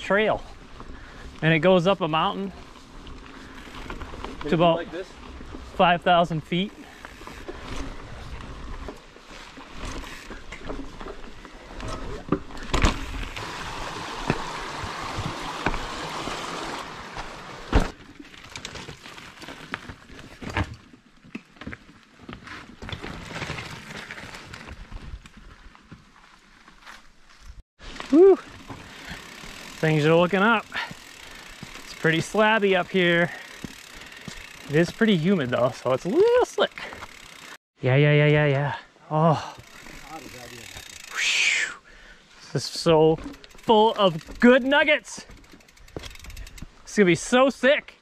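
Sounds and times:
bike tyres on dirt and rock: 0.0 - 37.6, 38.2 - 48.0
bike knocking and rattling: 0.4 - 37.6, 39.6 - 41.1, 43.0 - 46.9.

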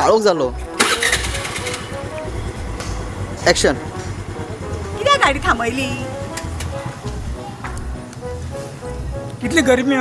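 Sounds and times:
scooter engine idling: 0.7 - 9.4.

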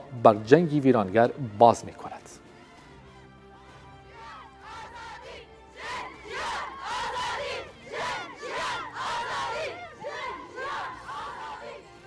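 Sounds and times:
group shouting in unison: 4.1 - 11.8.

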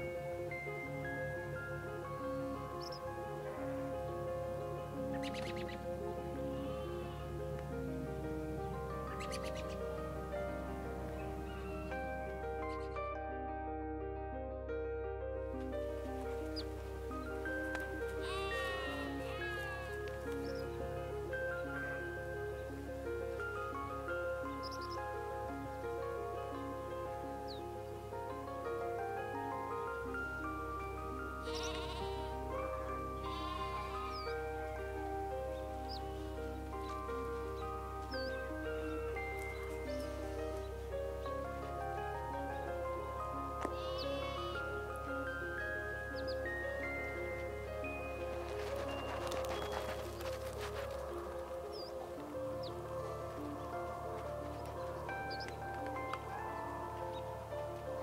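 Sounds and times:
background music: 0.0 - 58.0.

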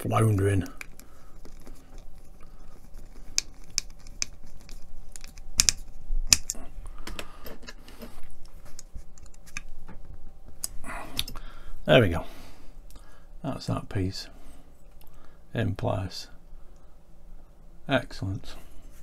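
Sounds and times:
small parts handled in fingers: 0.7 - 9.7
screwdriver clicking on small screw: 5.2 - 6.6.

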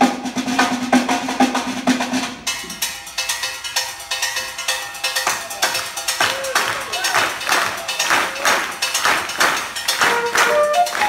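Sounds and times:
drum and percussion strikes: 0.0 - 11.0.

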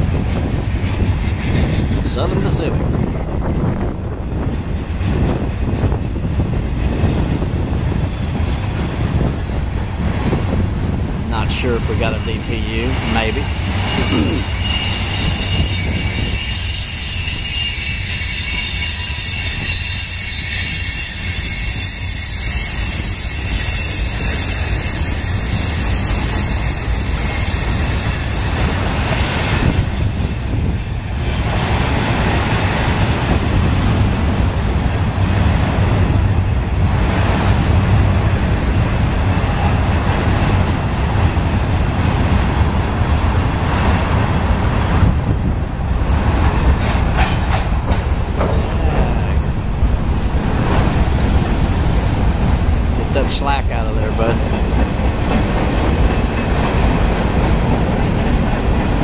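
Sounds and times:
rumble of wheels on rails: 0.0 - 59.0
train wheels squealing: 12.0 - 30.8.

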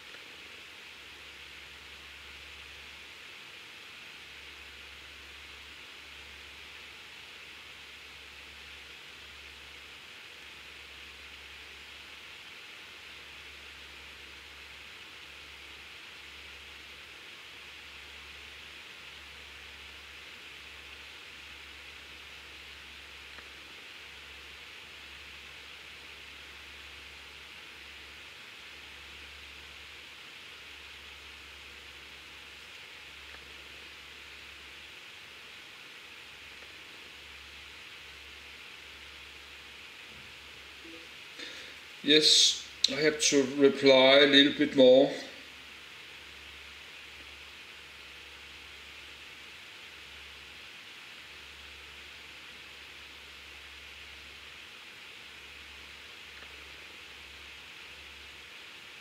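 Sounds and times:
faint hiss: 0.0 - 59.0.

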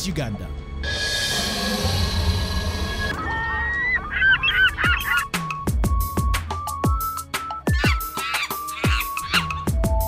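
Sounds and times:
birds honking squawks: 0.8 - 5.8, 7.6 - 9.8.

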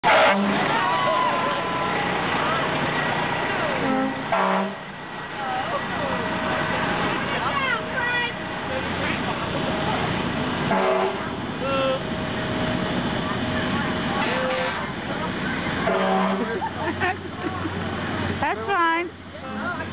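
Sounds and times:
fire truck horn blasts: 0.0 - 0.9, 3.8 - 5.0, 10.6 - 11.4, 15.8 - 16.6
crowd voices: 0.0 - 19.9
trucks rumbling: 0.0 - 19.9.

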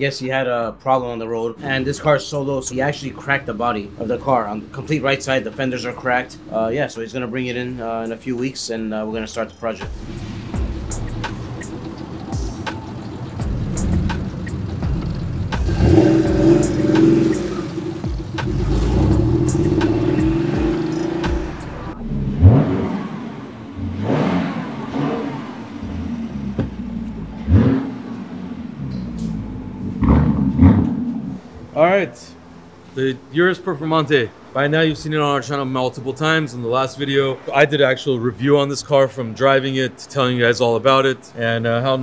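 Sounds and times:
street traffic: 0.0 - 42.0
car engine revving: 9.8 - 32.9.

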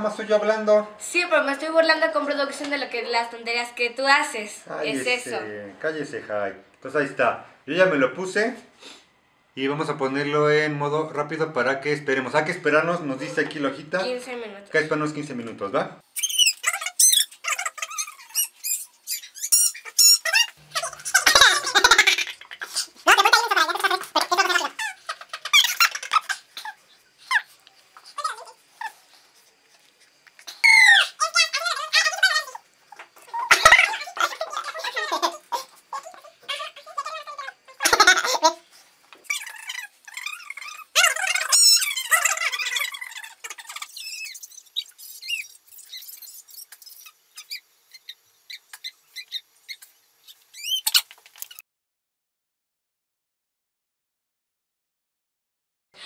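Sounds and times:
sped-up squeaky voices chattering: 16.2 - 29.2, 30.5 - 38.6, 39.2 - 51.6.

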